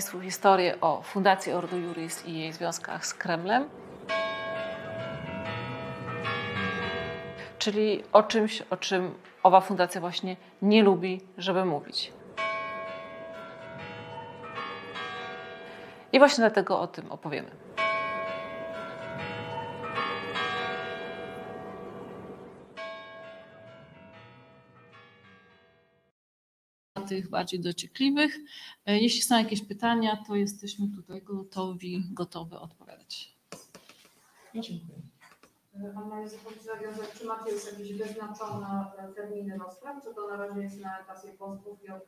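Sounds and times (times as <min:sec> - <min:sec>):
church bells ringing: 0:00.0 - 0:26.0.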